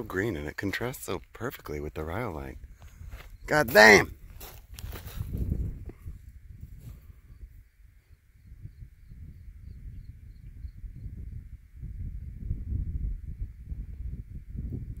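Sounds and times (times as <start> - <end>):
wind buffeting microphone: 2.4 - 15.0.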